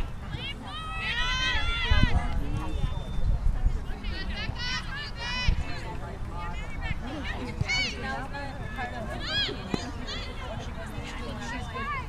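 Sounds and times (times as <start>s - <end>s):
people shouting: 0.4s - 2.3s.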